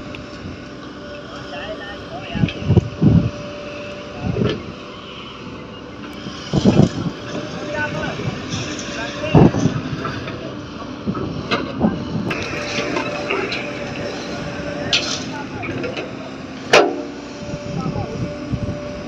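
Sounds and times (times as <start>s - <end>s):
excavator diesel engine running: 0.0s - 19.0s.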